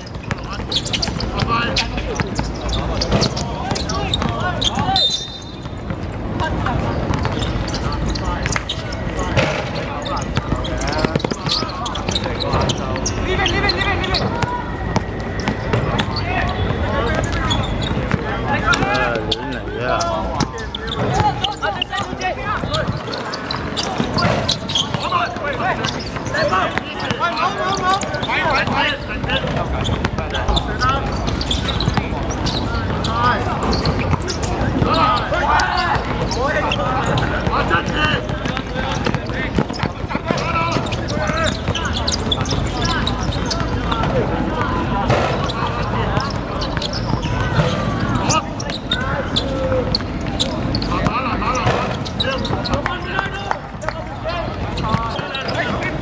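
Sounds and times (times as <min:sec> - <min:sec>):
basketball bouncing on court: 0:00.0 - 0:19.1, 0:20.2 - 0:56.0
people calling out: 0:00.6 - 0:05.7.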